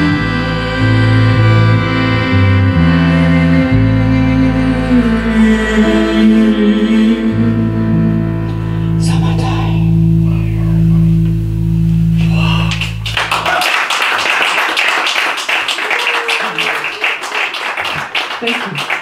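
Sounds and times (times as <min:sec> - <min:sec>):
electric guitar chord ringing: 0:00.0 - 0:13.3
small audience applauding: 0:12.6 - 0:19.0.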